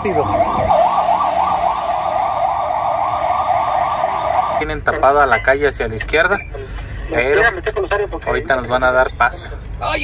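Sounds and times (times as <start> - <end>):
ambulance siren yelping: 0.0 - 4.9.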